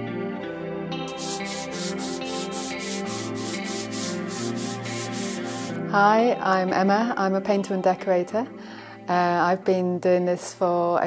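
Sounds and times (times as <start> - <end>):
background music with guitar tones: 0.0 - 11.0
hand sanding wood: 1.1 - 5.8.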